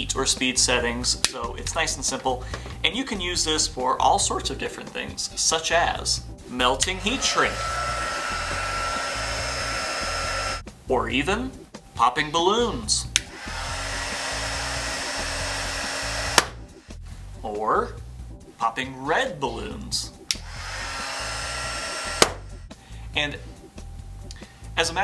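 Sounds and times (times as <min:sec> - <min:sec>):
high whine: 0:06.8 - 0:10.6
heat gun blowing air: 0:07.0 - 0:10.6, 0:13.2 - 0:17.0, 0:20.3 - 0:22.6
heat gun switch click: 0:16.1 - 0:16.6, 0:22.0 - 0:22.5.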